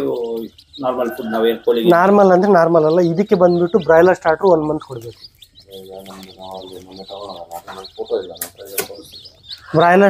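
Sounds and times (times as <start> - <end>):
chicks peeping: 0.0 - 10.0.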